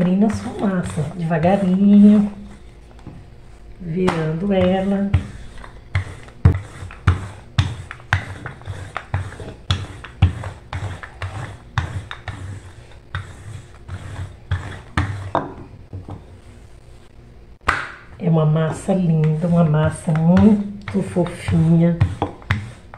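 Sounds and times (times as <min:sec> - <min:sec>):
rolling pin knocking on countertop: 0:04.0 - 0:12.5, 0:14.0 - 0:16.2, 0:17.6 - 0:18.0, 0:19.2 - 0:22.8.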